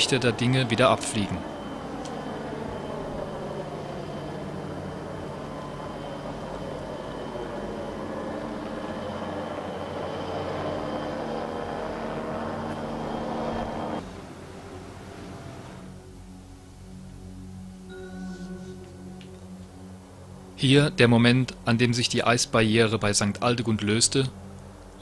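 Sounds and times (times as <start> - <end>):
helicopter engine drone: 0.0 - 22.4.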